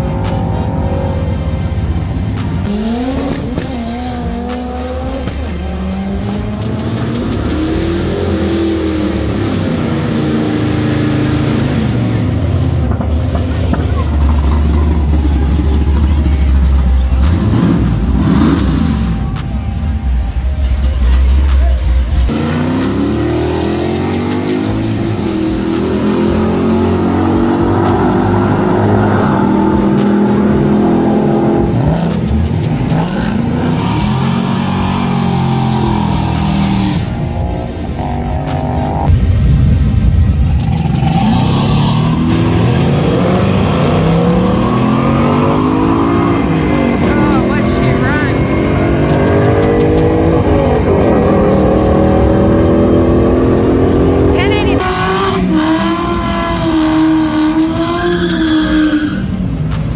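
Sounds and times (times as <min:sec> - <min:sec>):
drag racing engines revving: 0:00.0 - 0:59.9
music: 0:00.0 - 0:59.9.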